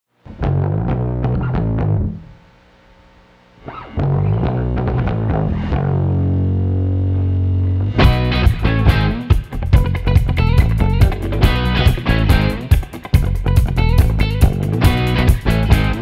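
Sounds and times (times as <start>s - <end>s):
distorted electric guitar riff: 0.1s - 16.0s
bass guitar: 0.2s - 2.4s, 3.6s - 16.0s.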